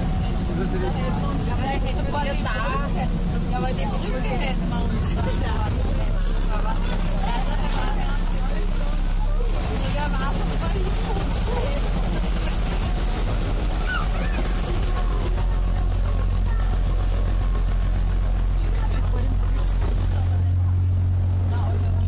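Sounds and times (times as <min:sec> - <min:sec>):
boat engine droning: 0:00.0 - 0:22.0
people talking indistinctly: 0:00.0 - 0:22.0.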